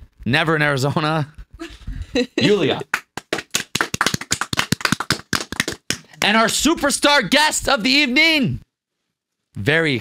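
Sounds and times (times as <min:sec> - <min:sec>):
people clapping: 0:02.7 - 0:07.0.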